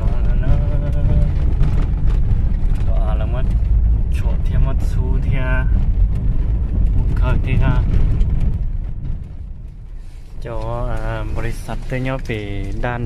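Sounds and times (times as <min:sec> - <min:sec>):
car driving on dirt road: 0:00.0 - 0:13.0.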